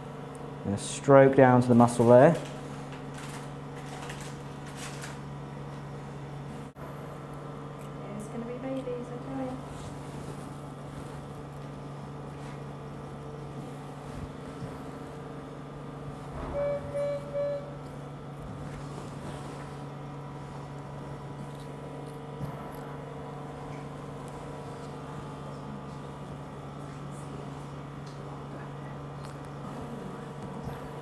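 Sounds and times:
low electrical equipment hum: 0.0s - 31.0s
short electronic beeps: 16.5s - 17.8s.

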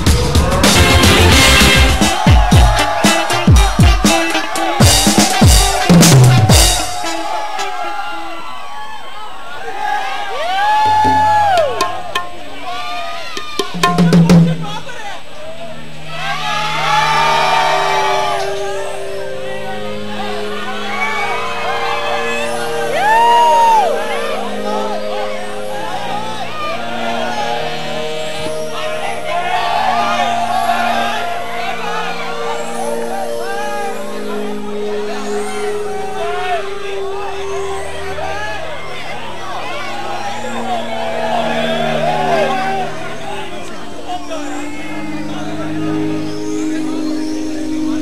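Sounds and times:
crowd cheering and whooping: 0.0s - 14.4s, 15.4s - 47.4s.

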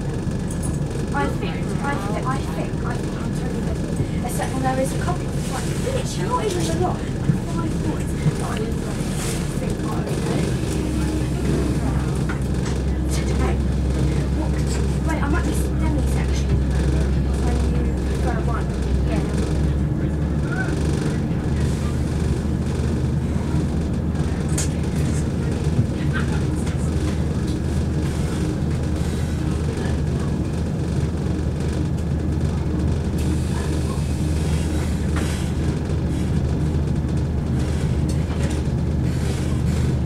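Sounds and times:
train diesel engine drone: 0.0s - 40.0s
wheels rumbling on track: 0.0s - 40.0s.

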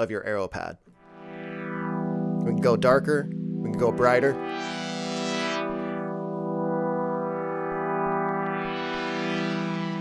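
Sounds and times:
synth pad chord with filter sweep: 1.0s - 10.0s.

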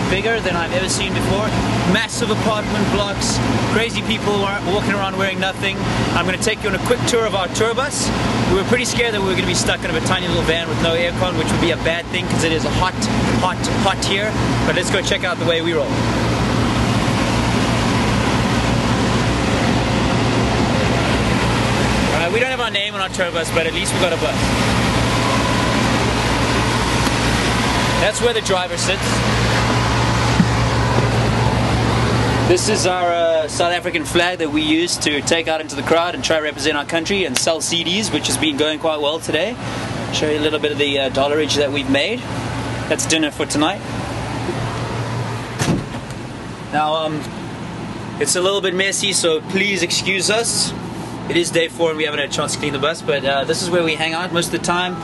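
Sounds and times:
bus interior hum and hiss: 0.0s - 55.0s
idling vehicle engines: 0.0s - 55.0s
even rushing noise: 14.0s - 34.6s
short knock: 45.6s - 46.0s.

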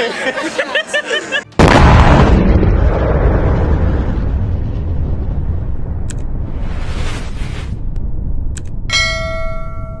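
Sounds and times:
low rumble: 1.6s - 10.0s
bell chime ringing: 8.9s - 10.0s.

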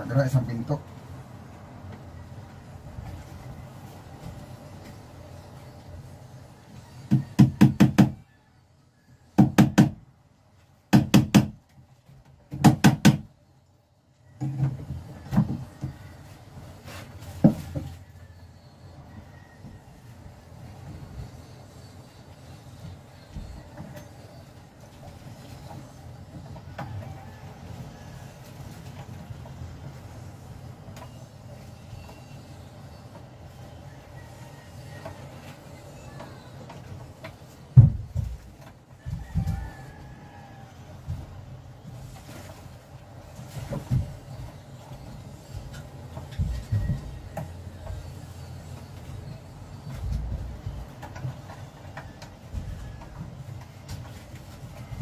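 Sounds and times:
sharp knocks on wooden panel: 7.1s - 8.2s, 9.4s - 10.0s, 10.9s - 11.6s, 12.5s - 13.3s.

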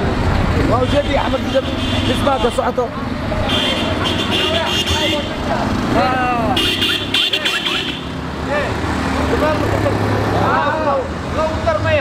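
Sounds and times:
auto-rickshaw engines passing: 0.0s - 12.0s
people talking: 0.6s - 12.0s.

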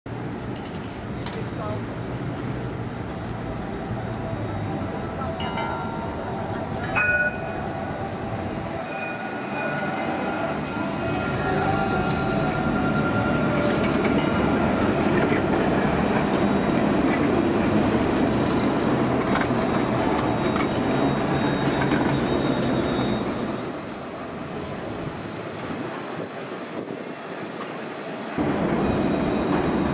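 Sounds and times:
tram humming: 0.1s - 29.9s
faint voices of passers-by: 0.8s - 17.2s.

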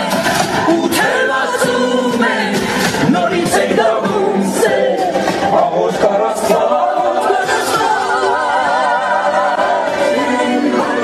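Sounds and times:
group of voices singing: 0.0s - 11.0s.

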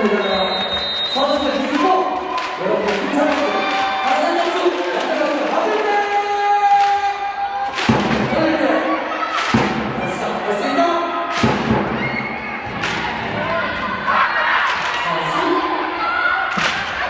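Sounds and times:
crowd noise and voices: 0.0s - 17.0s
heavy echoing thumps: 7.6s - 8.7s, 9.4s - 10.2s, 11.3s - 14.0s.

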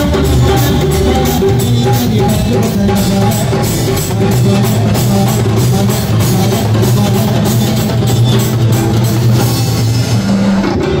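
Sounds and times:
drum kit beat: 0.0s - 11.0s
held low notes: 0.0s - 11.0s.

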